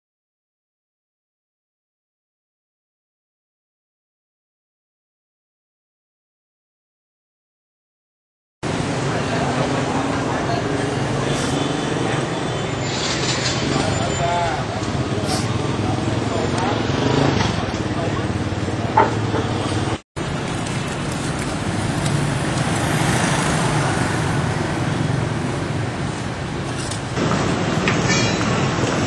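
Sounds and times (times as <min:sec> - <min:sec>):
people chattering: 0:08.6 - 0:29.0
road traffic: 0:08.6 - 0:29.0.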